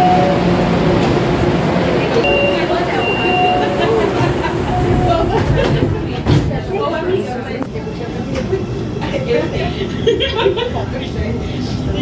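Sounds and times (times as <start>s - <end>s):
metro train running: 0.0s - 12.0s
passengers talking: 0.0s - 12.0s.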